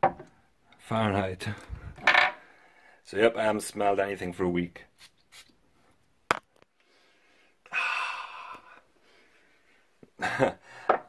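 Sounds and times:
man breathing in through nose: 1.7s - 3.0s, 6.8s - 9.9s.

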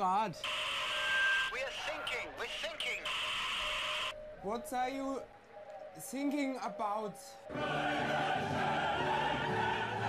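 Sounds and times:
voice over radio: 1.5s - 3.2s.

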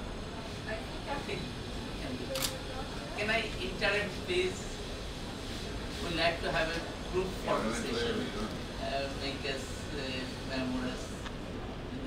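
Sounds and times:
sharp click: 2.4s - 2.6s.

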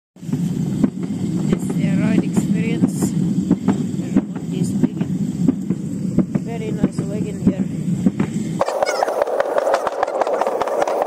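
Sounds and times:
wagon wheels rolling on concrete: 8.6s - 11.0s.

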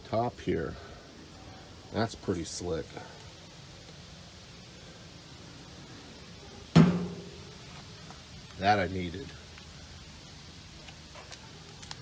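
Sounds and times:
metal griddle hood clanging shut: 6.8s - 7.4s.

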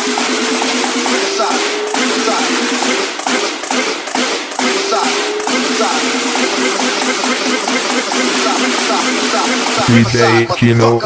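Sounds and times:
electro-house dance track: 0.0s - 10.5s
sharp percussion hits: 0.0s - 10.5s.

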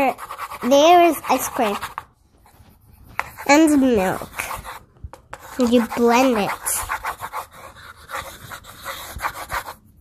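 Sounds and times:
pencil scratching on paper: 0.0s - 10.0s.

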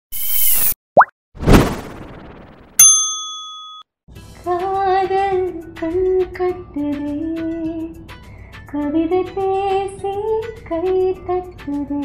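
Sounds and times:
rising pop: 1.0s - 2.8s
short whoosh: 1.4s - 2.7s
bright chime: 2.8s - 3.8s.

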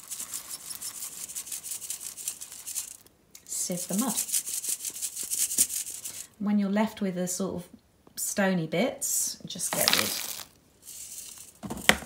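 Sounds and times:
soil rasping through wire sieve: 0.0s - 3.1s, 9.7s - 12.0s.

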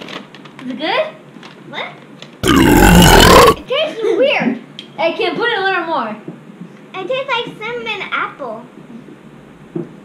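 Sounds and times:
person burping loudly: 2.4s - 3.6s.

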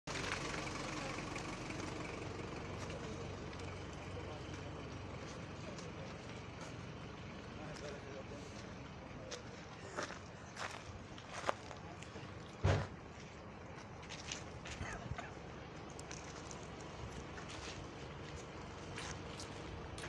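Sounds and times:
steady low rumble: 0.2s - 20.0s.

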